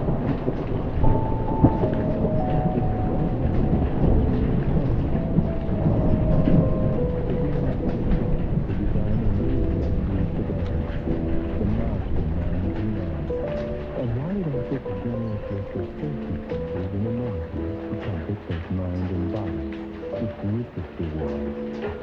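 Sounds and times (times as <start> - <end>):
faint tune from tv: 0.0 - 22.0
raindrops tapping: 0.0 - 22.0
rolling thunder: 0.0 - 22.0
steady rain: 0.0 - 22.0.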